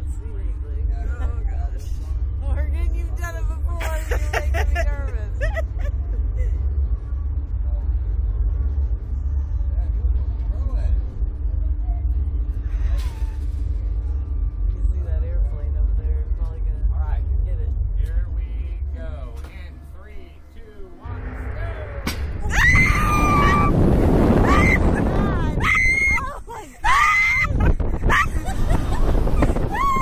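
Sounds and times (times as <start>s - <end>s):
faint background music: 0.0s - 23.7s
low rumble: 0.0s - 30.0s
rushing wind: 21.0s - 30.0s
women screaming: 22.4s - 28.6s, 29.4s - 30.0s.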